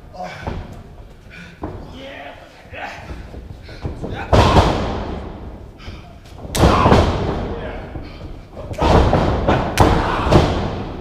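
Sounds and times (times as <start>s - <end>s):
wrestlers' strikes thudding and slapping: 3.7s - 5.6s, 6.3s - 11.0s.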